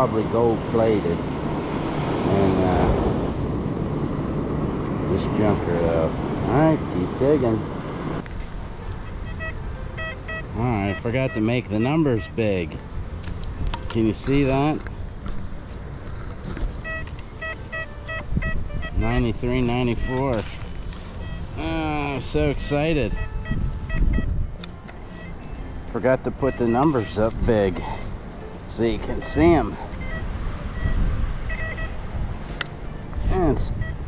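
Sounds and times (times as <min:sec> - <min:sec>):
metal detector short high beeps: 0:09.0 - 0:12.5, 0:16.7 - 0:24.4, 0:26.4 - 0:27.3, 0:29.0 - 0:32.7, 0:33.3 - 0:34.0
sharp click: 0:32.5 - 0:32.8.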